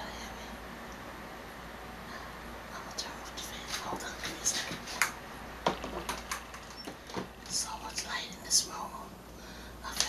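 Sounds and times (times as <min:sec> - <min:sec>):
woman whispering: 0:00.0 - 0:00.6, 0:02.7 - 0:05.0, 0:07.5 - 0:09.2.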